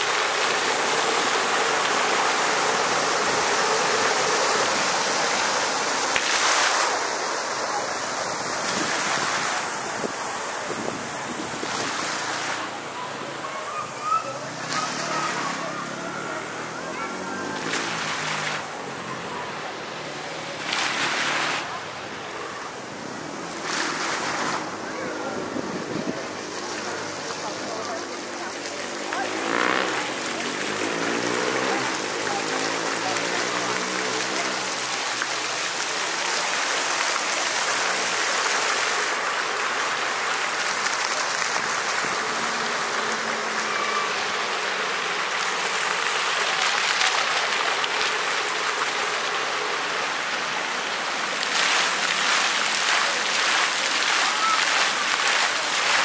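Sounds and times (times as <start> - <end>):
fountain water splashing: 0.0 - 56.0.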